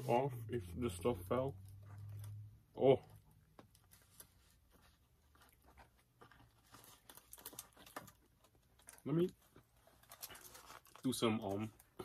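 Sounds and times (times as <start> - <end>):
cardboard boxes and foil rustling: 3.7 - 12.0.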